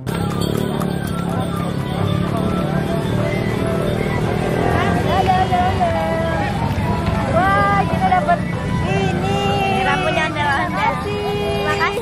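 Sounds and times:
motorcycle engine running: 0.0s - 10.0s
street traffic: 0.0s - 12.0s.

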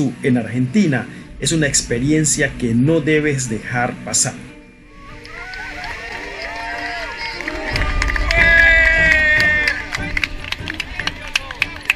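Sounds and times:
wind rumble: 1.0s - 11.9s
passengers shouting and cheering: 4.8s - 11.9s
high-pitched scream: 4.9s - 9.9s.

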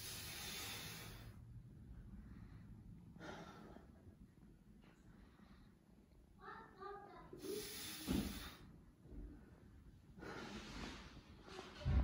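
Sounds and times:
man breathing out through nose: 0.0s - 1.4s, 7.4s - 8.7s.

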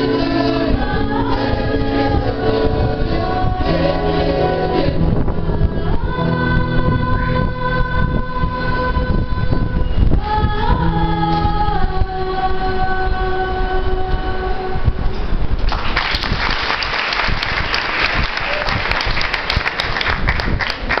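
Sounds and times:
children's choir singing: 0.0s - 14.9s
audience applause: 15.7s - 21.0s.

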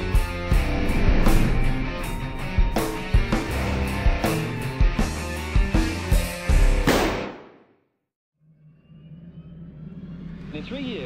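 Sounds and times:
low rumbling drone: 0.0s - 5.2s.

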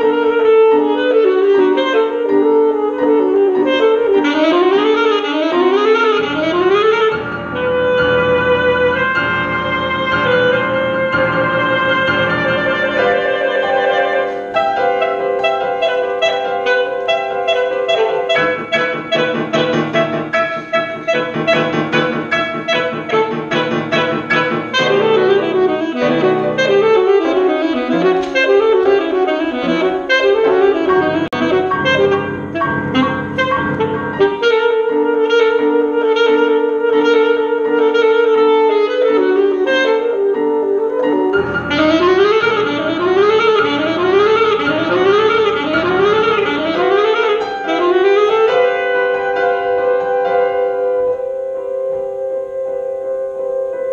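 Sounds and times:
alto saxophone: 0.0s - 53.9s
grand piano: 0.0s - 53.9s.

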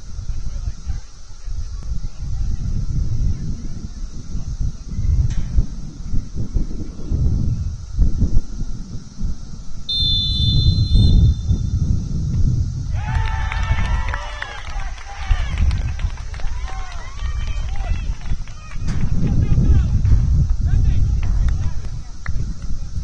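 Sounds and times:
wind buffeting microphone: 0.0s - 23.0s
referee's whistle blast: 9.9s - 11.8s.

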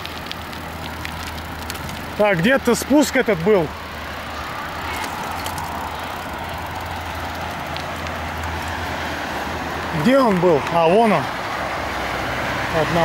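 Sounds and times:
cars passing at speed: 0.0s - 13.0s
motorway traffic drone: 0.0s - 13.0s.

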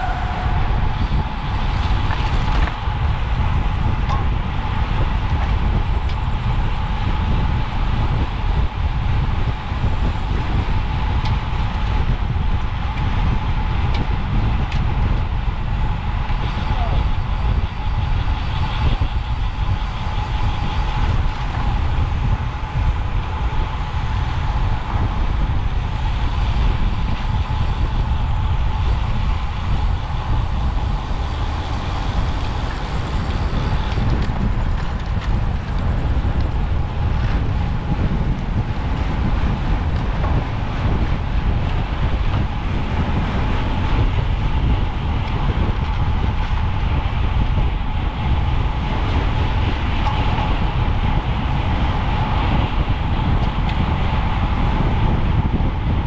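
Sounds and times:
thin steady whine: 0.0s - 56.0s
wind rushing over microphone: 0.0s - 56.0s.

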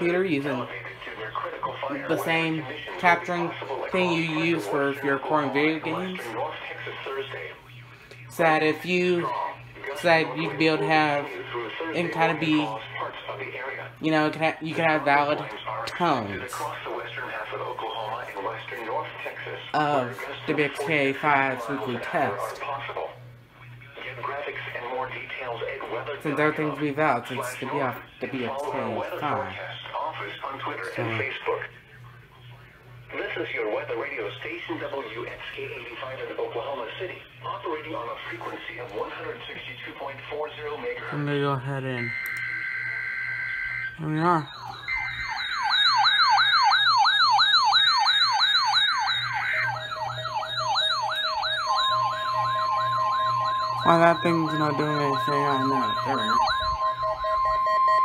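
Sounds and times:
radio speech through speaker: 0.0s - 42.2s, 44.0s - 44.8s, 49.3s - 56.7s
steady alarm tones: 0.0s - 58.0s
low hum: 41.9s - 58.0s
higher faster warble: 42.5s - 58.0s.

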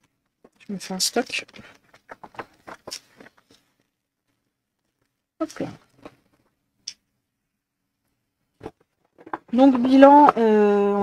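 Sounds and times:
plastic sleeve rustling: 0.3s - 5.2s.

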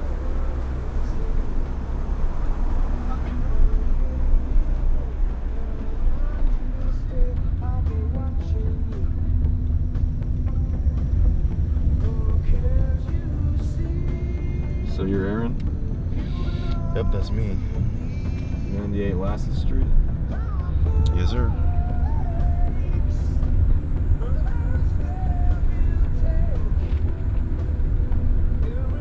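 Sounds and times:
car engine and road noise: 0.0s - 29.0s.

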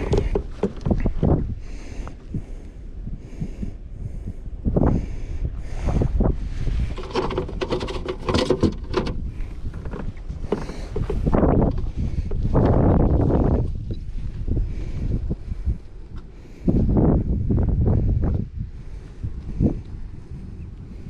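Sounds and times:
gear clicking in plastic kayak: 0.0s - 1.4s, 6.9s - 14.0s
wind buffeting microphone: 0.0s - 21.0s.

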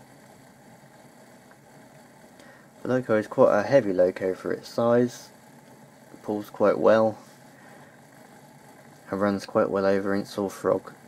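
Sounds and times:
model locomotive motor humming: 0.0s - 11.0s.

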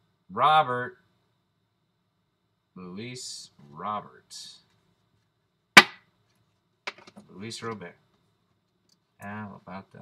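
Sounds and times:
hand smack: 5.8s - 6.0s.

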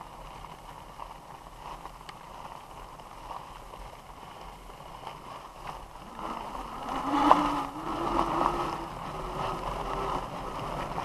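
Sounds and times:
bike tyre and wind noise: 0.0s - 11.0s.

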